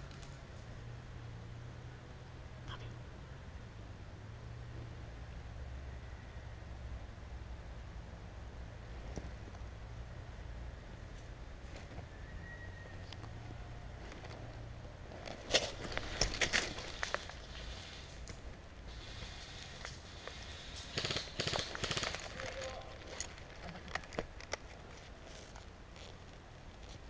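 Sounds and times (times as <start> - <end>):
dry leaves and twigs crunching: 13.3 - 27.0.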